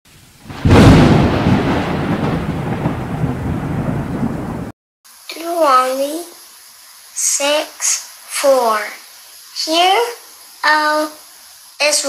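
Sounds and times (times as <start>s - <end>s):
rain hissing: 0.1s - 12.0s
thunderclap and rumble: 0.4s - 4.7s.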